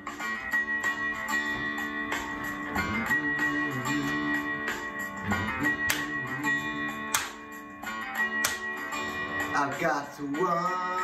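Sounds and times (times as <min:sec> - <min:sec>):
sharp guitar strums: 0:00.0 - 0:09.8
guitar chords ringing: 0:00.0 - 0:11.0.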